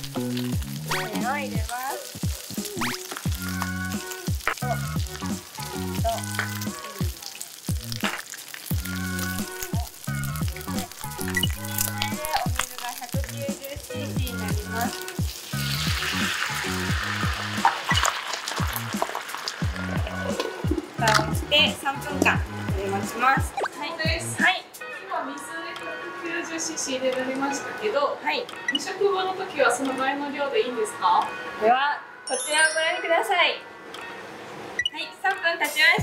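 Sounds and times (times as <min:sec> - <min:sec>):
food sizzling in a frying pan: 0:00.0 - 0:23.6
water hissing in a hot pan: 0:00.0 - 0:23.6.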